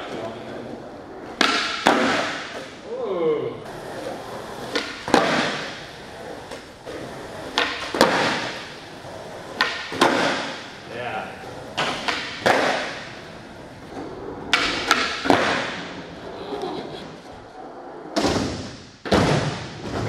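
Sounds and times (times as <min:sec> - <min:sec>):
skateboard wheels rolling: 0:00.0 - 0:02.9, 0:03.6 - 0:20.0.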